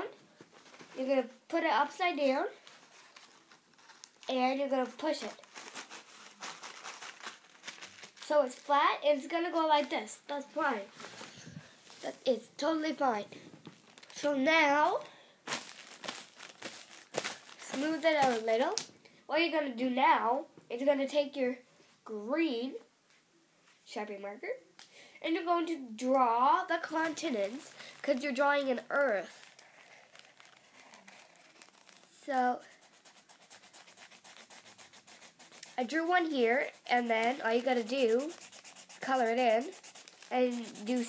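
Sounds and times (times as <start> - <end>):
paper coffee filter crinkling: 2.6 - 8.8, 13.6 - 14.3, 15.0 - 18.9, 26.8 - 34.4, 36.6 - 41.0
marker scribbling on paper: 32.6 - 41.0.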